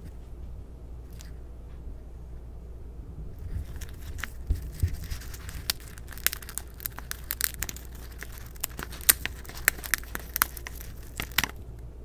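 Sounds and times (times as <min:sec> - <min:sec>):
hamster crunching peanut shell: 0:03.4 - 0:11.8.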